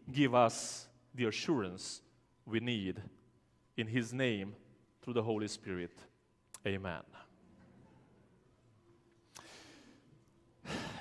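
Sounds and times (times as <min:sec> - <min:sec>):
man speaking: 0:00.0 - 0:07.3.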